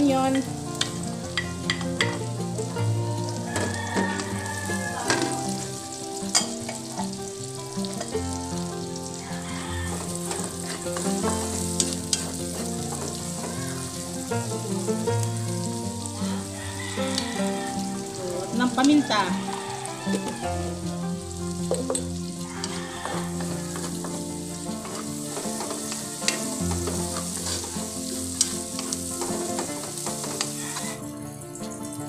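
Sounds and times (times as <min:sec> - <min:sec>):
wooden spatula scraping wok: 0:00.0 - 0:31.1
garlic and onion sizzling in oil: 0:00.0 - 0:32.0
spatula knocking against pan: 0:00.8 - 0:02.2, 0:03.5 - 0:04.3.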